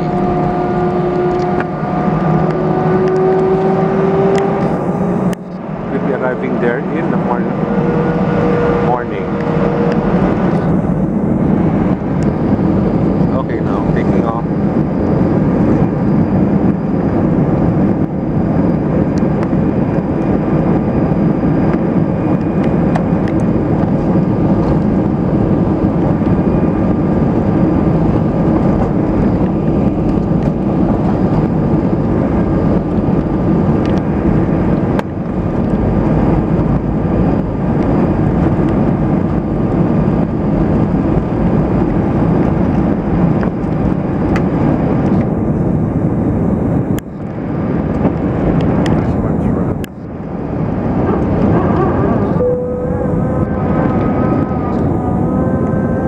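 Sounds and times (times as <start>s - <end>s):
jet engines roaring in cabin: 0.0s - 56.0s
steady pitched tones: 0.0s - 56.0s.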